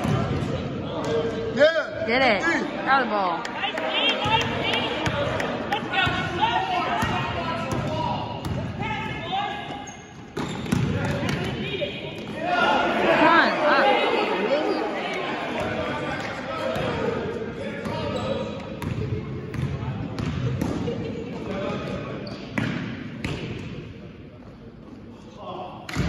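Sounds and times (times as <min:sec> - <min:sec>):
voices echoing in a gym: 0:00.0 - 0:26.0
basketball bouncing on gym floor: 0:07.0 - 0:09.2, 0:10.3 - 0:11.5, 0:18.8 - 0:20.8.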